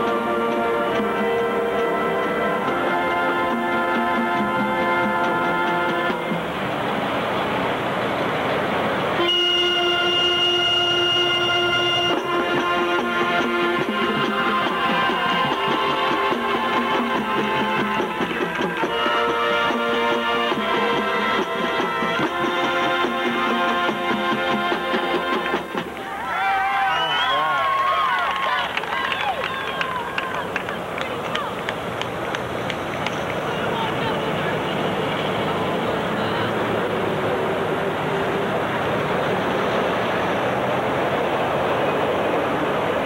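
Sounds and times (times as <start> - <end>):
brass band sustained chord: 0.0 - 6.7, 9.2 - 25.7
rushing wash of sound: 5.1 - 22.0, 31.6 - 43.0
crowd of voices: 11.3 - 43.0
sharp claps or taps: 29.1 - 33.5.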